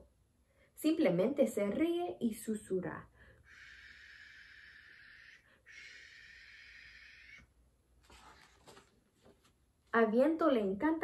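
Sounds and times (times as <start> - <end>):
woman making breathy hisses: 3.4 - 7.4.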